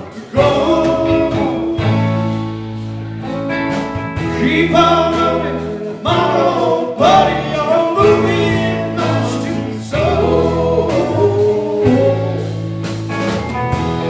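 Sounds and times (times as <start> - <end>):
several voices singing: 0.0 - 2.5, 4.2 - 12.7
live band playing: 0.0 - 14.0.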